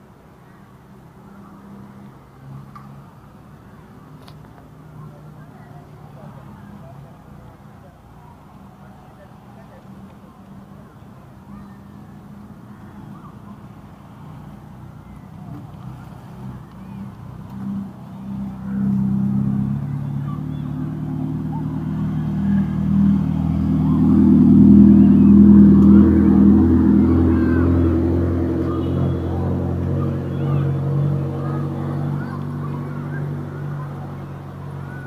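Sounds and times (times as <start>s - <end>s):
car engines running at low speed: 0.0s - 35.0s.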